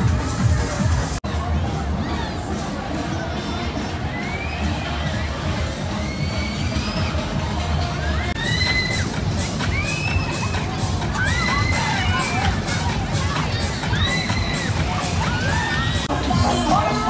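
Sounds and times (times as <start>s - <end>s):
fairground music with steady beat: 0.0s - 17.0s.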